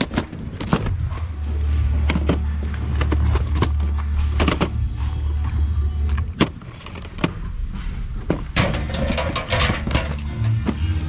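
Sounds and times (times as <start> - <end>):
plastic cases clicking and clacking: 0.0 - 5.4
low steady rumble: 0.3 - 11.0.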